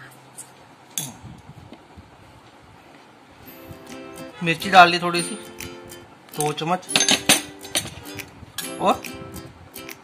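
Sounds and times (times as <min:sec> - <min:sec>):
kitchen utensils clinking: 0:06.4 - 0:08.0.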